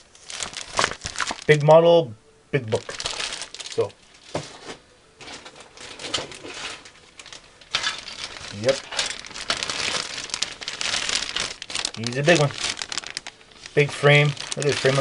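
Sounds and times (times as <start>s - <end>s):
plastic bags crinkling: 0.0s - 1.7s, 2.7s - 15.0s.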